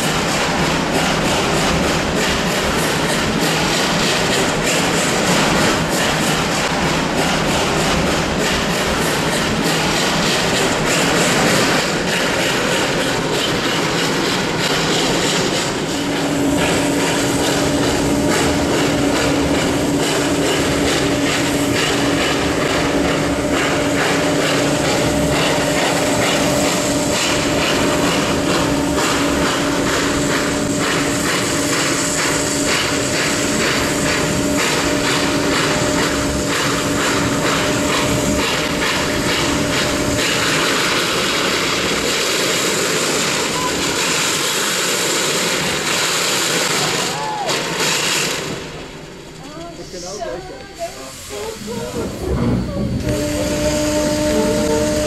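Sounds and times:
steam train hiss and running noise: 0:00.0 - 0:55.0.

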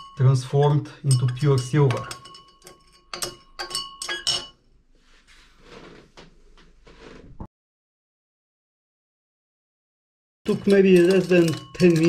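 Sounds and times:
granules clinking against glass: 0:00.0 - 0:04.6, 0:10.5 - 0:12.0.

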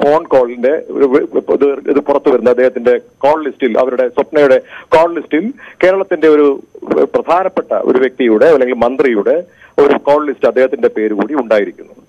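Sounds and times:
man talking over phone line: 0:00.0 - 0:12.0.

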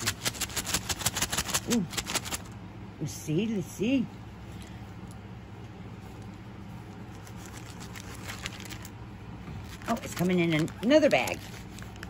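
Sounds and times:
plastic bag crinkling: 0:00.0 - 0:02.5, 0:06.9 - 0:09.0, 0:09.6 - 0:12.0
steady low hum: 0:00.0 - 0:12.0.

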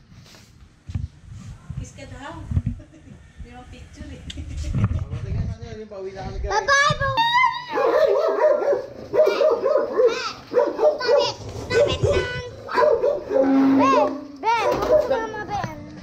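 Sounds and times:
dog yelps: 0:07.3 - 0:15.3
small dogs barking: 0:07.7 - 0:15.4.

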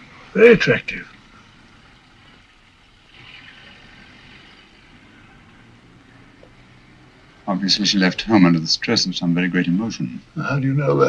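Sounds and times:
faint traffic noise: 0:00.0 - 0:11.0
hiss: 0:03.0 - 0:07.0.

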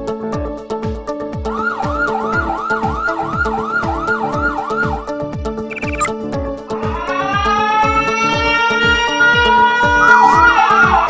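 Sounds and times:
warbling electronic siren: 0:01.6 - 0:05.1, 0:05.7 - 0:06.1, 0:07.0 - 0:11.0
upbeat electronic music: 0:01.7 - 0:05.1, 0:05.7 - 0:06.1, 0:10.0 - 0:10.6.

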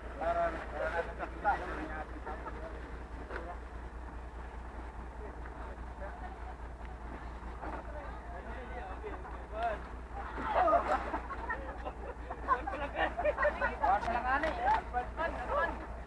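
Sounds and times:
diesel engine idling: 0:00.0 - 0:16.0
people talking: 0:00.0 - 0:16.0.

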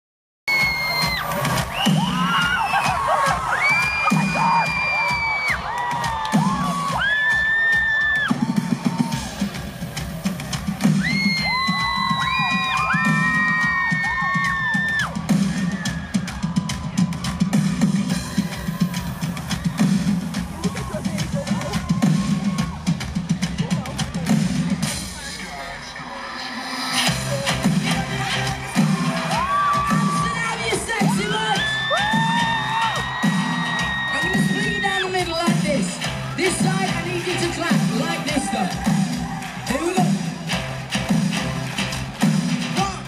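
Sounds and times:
concert crowd screaming: 0:00.5 - 0:23.2, 0:27.0 - 0:43.0
live drums playing a beat: 0:00.5 - 0:25.3, 0:27.1 - 0:43.0.

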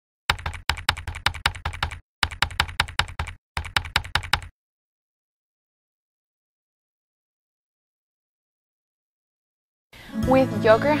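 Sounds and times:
keyboard key clicks: 0:00.3 - 0:04.5.

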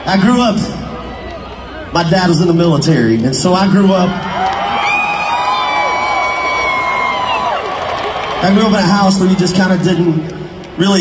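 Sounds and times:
arena crowd cheering: 0:00.0 - 0:11.0
high held cries and whoops: 0:04.3 - 0:08.4.

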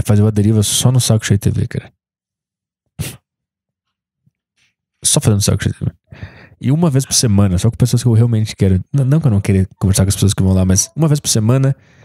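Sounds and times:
man's sharp burst of breath: 0:03.0 - 0:03.2.

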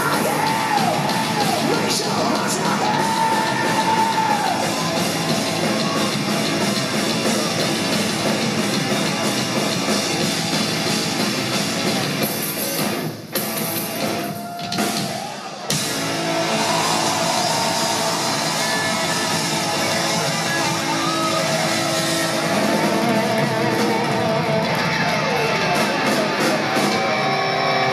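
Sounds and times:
yelled vocals: 0:00.0 - 0:08.7
live heavy metal band: 0:00.0 - 0:27.9.

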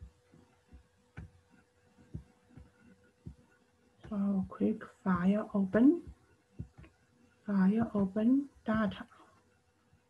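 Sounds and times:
faint low thumps: 0:00.0 - 0:08.8
faint steady hum: 0:00.0 - 0:10.0.

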